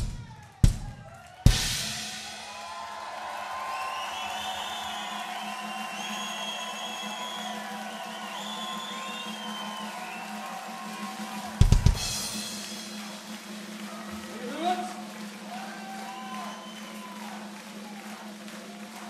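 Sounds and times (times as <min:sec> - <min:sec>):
drum and cymbal hits: 0:00.0 - 0:18.0.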